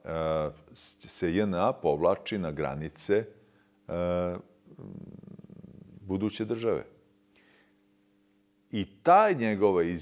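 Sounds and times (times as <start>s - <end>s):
man's creaky vocal fry: 4.7s - 6.0s.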